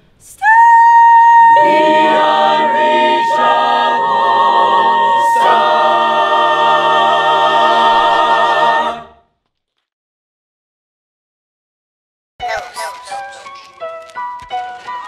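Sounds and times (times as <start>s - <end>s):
a cappella choir singing: 1.4s - 9.2s.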